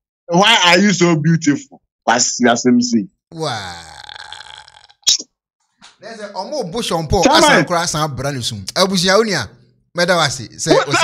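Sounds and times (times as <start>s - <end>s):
man's drawn-out vocal sound: 3.3s - 4.9s.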